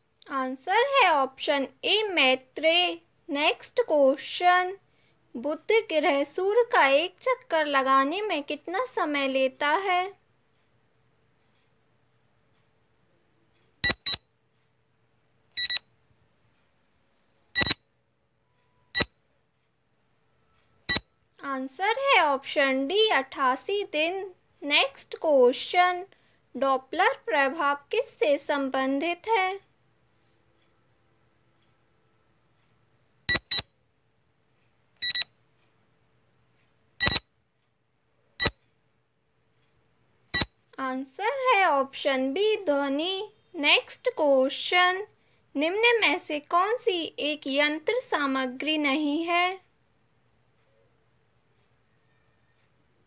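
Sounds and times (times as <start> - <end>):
electronic timer beeps: 13.8 - 14.3, 15.6 - 15.9, 17.6 - 17.8, 18.6 - 19.2, 20.9 - 21.1, 33.3 - 33.7, 35.0 - 35.3, 37.0 - 37.3, 38.4 - 38.6, 40.3 - 40.6.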